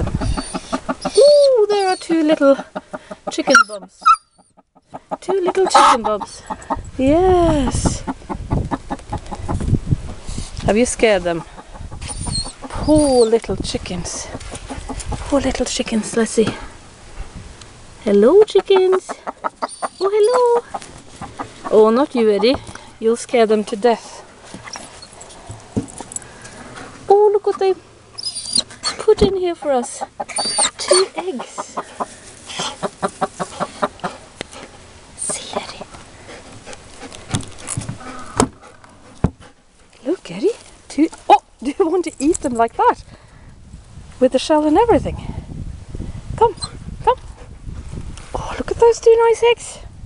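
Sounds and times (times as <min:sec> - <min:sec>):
hens clucking: 0:00.0 - 0:09.8, 0:10.8 - 0:15.7, 0:18.2 - 0:22.9, 0:28.5 - 0:39.2.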